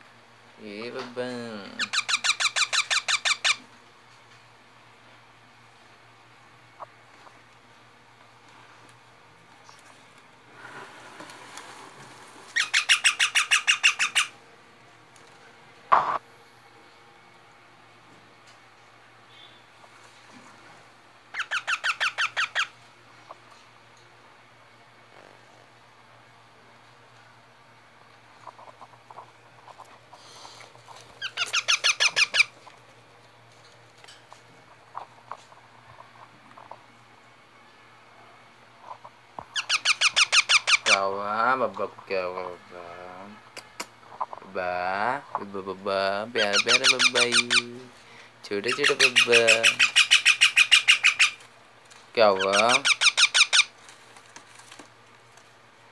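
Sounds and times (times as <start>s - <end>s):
parakeet calling rapidly: 1.4s - 3.7s, 12.5s - 14.4s, 21.3s - 22.8s, 31.2s - 32.7s, 38.9s - 41.3s, 46.2s - 47.9s, 48.6s - 51.5s, 52.2s - 53.8s.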